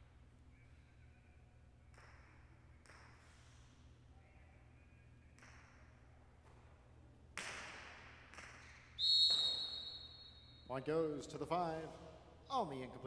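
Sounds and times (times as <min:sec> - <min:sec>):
ball cracking against wall: 0:07.4 - 0:09.6.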